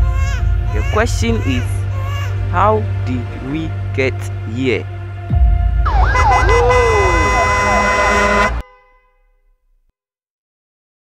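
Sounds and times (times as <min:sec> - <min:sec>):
deep rumble: 0:00.0 - 0:08.6
steady high tones: 0:05.9 - 0:08.6
wailing siren-like tones: 0:05.9 - 0:08.6.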